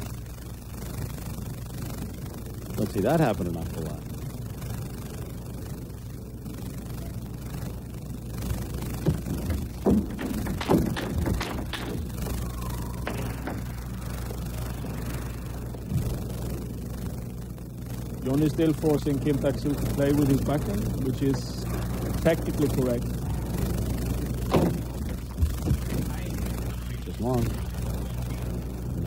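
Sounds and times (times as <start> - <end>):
low hall hum: 0.0 - 29.0.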